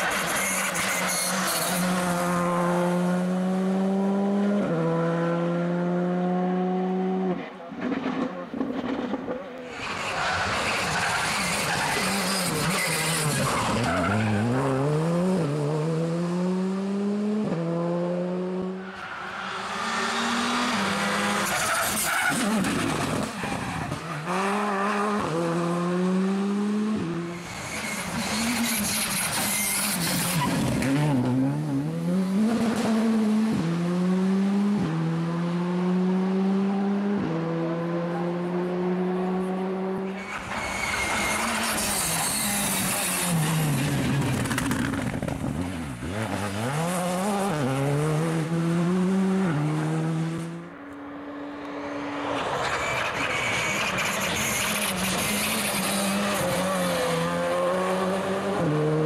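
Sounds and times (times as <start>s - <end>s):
rally car engines revving: 0.0s - 59.0s.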